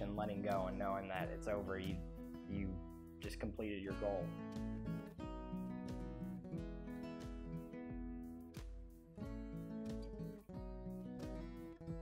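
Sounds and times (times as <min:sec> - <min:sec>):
acoustic guitar music: 0:00.0 - 0:12.0.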